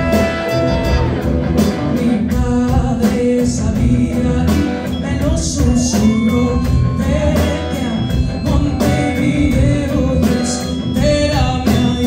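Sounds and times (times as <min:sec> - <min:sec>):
drums steady beat: 0:00.0 - 0:12.0
live band playing: 0:00.0 - 0:12.0.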